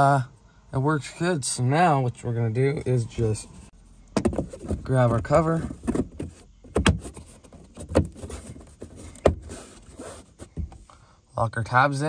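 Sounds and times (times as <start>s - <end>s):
plastic speaker grille handled: 4.2s - 10.8s.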